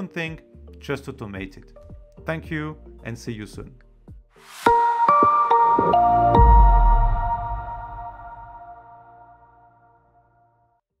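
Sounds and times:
electronic chord over deep bass: 5.8s - 9.6s.

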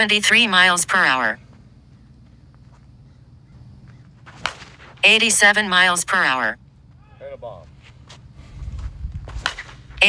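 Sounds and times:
softball bat cracking ball: 4.2s - 4.8s, 9.3s - 9.8s.

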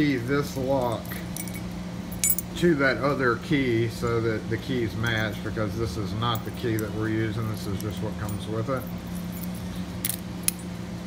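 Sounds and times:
steady low hum: 0.0s - 11.0s
keys clinking: 0.5s - 2.6s, 6.3s - 10.7s.

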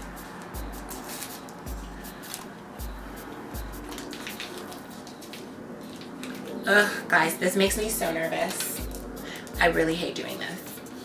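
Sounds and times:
background music with deep beat: 0.0s - 5.4s, 7.7s - 10.1s
foil packet crinkling and tearing: 0.6s - 2.7s, 3.5s - 6.6s.

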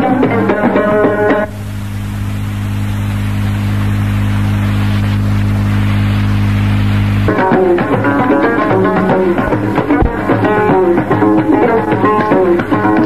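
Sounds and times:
lute music with percussion: 0.0s - 1.6s, 7.2s - 13.0s
electrical hum with hiss: 0.0s - 13.0s.

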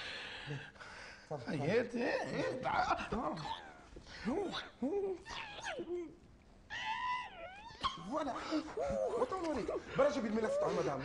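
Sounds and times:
high-pitched comic wailing voice: 6.7s - 8.0s.

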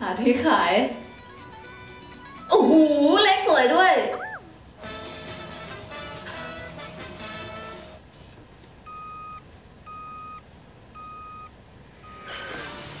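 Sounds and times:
cartoon music: 1.0s - 3.1s, 4.0s - 4.6s
short electronic beeps: 4.1s - 4.5s, 8.9s - 10.4s, 11.0s - 12.4s.

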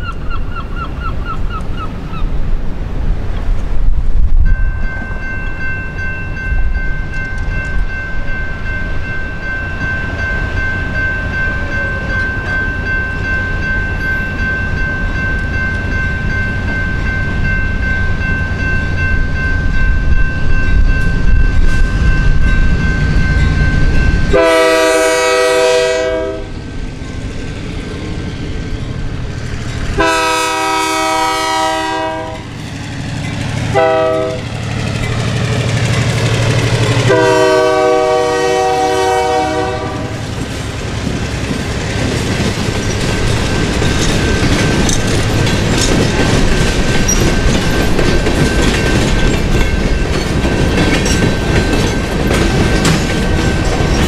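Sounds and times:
high ringing tone: 4.4s - 25.9s
locomotive engine rumble: 6.6s - 54.0s
train horn blasts: 24.3s - 26.6s, 30.0s - 32.5s, 33.7s - 34.5s, 37.0s - 40.3s.

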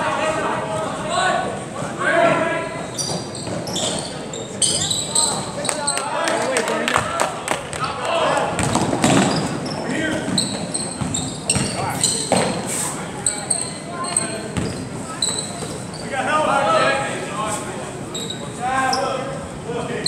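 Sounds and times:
voices echoing in gym: 0.0s - 20.0s
sneakers squeaking: 1.8s - 6.3s, 7.7s - 16.3s, 17.6s - 19.6s.

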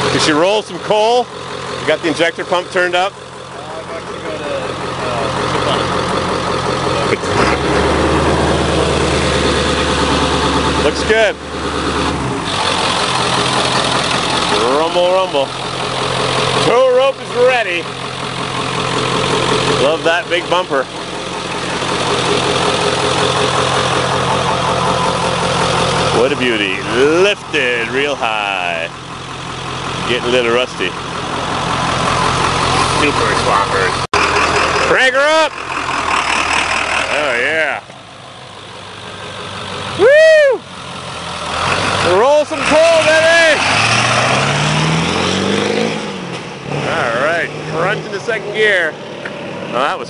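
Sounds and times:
diesel engine idling: 0.0s - 50.0s.

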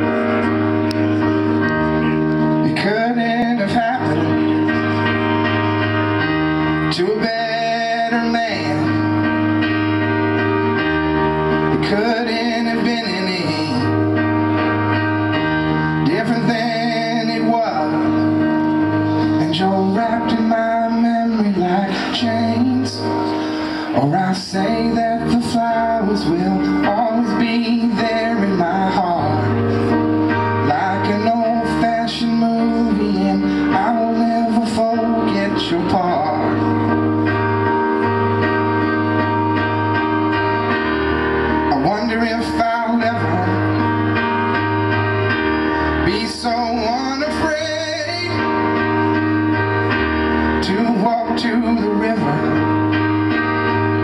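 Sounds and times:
keyboard playing sustained chords: 0.0s - 54.0s
man singing: 2.2s - 5.1s, 6.6s - 9.6s, 11.6s - 37.4s, 41.5s - 44.2s, 45.8s - 53.1s.

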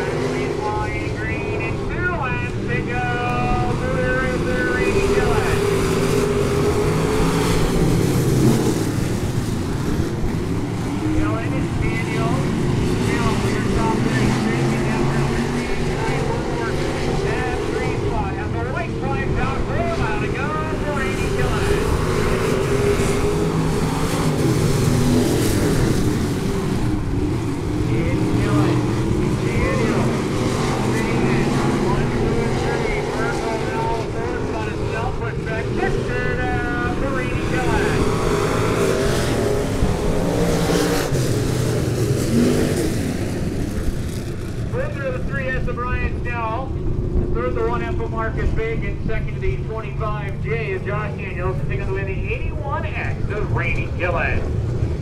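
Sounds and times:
car engines running at low revs: 0.0s - 55.0s.

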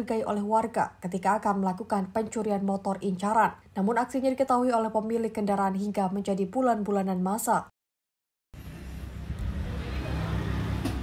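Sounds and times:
low street noise rumble: 8.6s - 11.0s.

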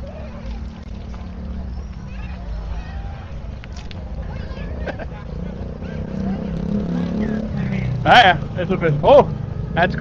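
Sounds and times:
faint voices: 0.0s - 10.0s
low traffic rumble: 0.0s - 10.0s
motor scooter engine passing: 4.2s - 10.0s.

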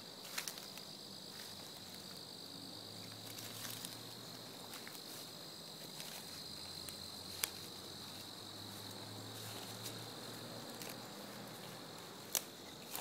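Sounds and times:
insects chorus: 0.0s - 13.0s.

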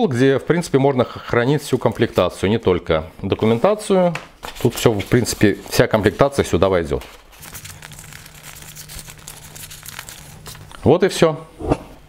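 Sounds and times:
paper and plastic pouch crinkling: 1.6s - 2.4s, 4.4s - 11.0s.

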